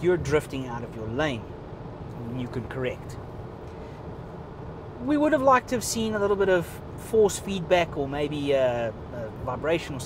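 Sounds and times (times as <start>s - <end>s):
road and tyre noise in car cabin: 0.0s - 10.0s.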